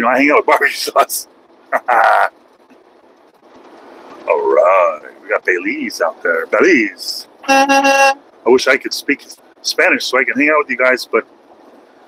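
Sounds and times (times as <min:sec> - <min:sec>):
truck cab road noise: 0:00.0 - 0:12.0
man laughing: 0:01.7 - 0:02.3.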